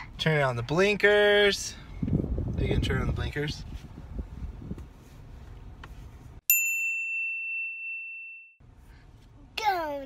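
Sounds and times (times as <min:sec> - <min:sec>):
bell-like ding: 0:06.5 - 0:08.6.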